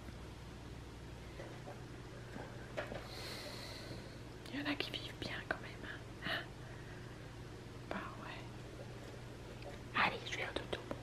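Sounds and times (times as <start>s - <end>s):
low steady hum: 0.0s - 11.0s
person whispering: 4.5s - 6.0s, 9.9s - 10.9s.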